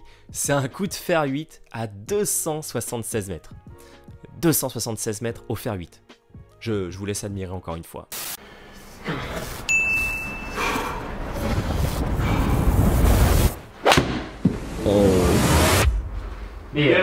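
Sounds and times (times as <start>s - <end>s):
golf club striking ball: 13.8s - 14.6s.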